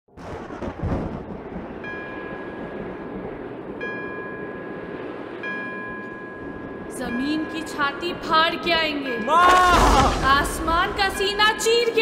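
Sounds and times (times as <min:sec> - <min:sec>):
low rumble of thunder: 0:00.1 - 0:03.8
steady background hiss: 0:01.5 - 0:09.3.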